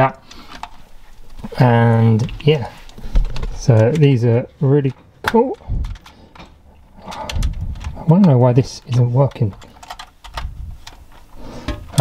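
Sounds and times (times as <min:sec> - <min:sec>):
plastic clicks and knocks: 0:04.8 - 0:12.0.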